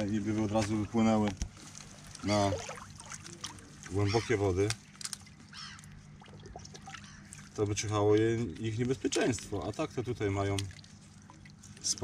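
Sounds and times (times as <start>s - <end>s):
faint water trickle: 0.0s - 12.0s.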